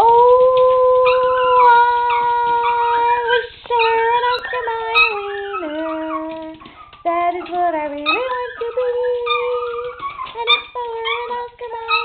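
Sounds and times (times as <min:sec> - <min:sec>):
dogs howling: 0:00.0 - 0:12.0.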